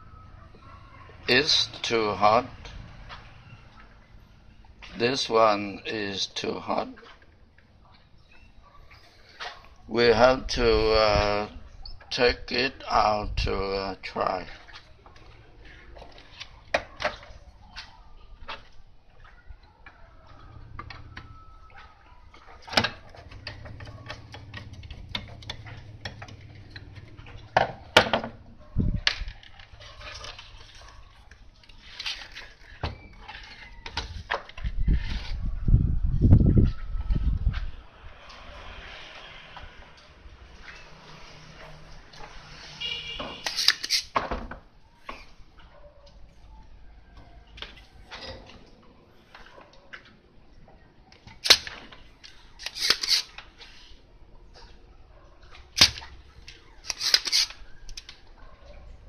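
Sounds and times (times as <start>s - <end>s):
clicks knocks and scrapes: 43.2s - 45.4s, 51.2s - 53.9s, 55.5s - 58.2s.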